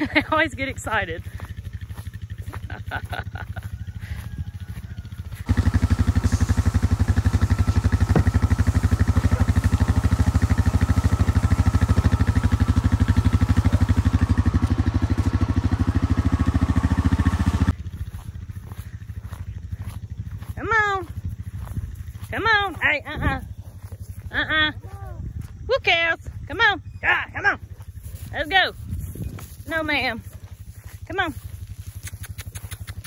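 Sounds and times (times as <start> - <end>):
atv engine running: 0.0 - 33.0.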